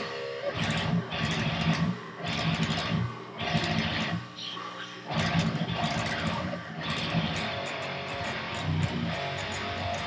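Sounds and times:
distorted electric guitar metal riffing: 0.0s - 10.0s.

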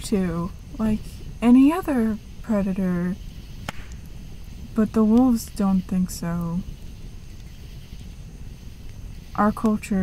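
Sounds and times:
campfire crackling: 0.0s - 10.0s
low rumble of burning wood: 0.0s - 10.0s.

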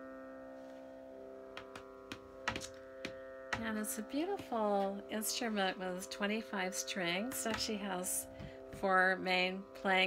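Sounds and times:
sarode strings ringing: 0.0s - 10.0s
knocks and clicks on instrument: 1.6s - 3.7s.

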